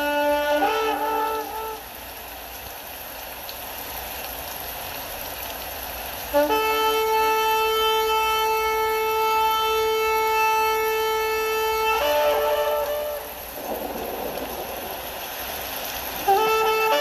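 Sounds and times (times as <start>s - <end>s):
horn-like notes: 0.0s - 2.0s, 6.3s - 13.6s, 16.1s - 17.0s
rushing hiss: 0.0s - 17.0s.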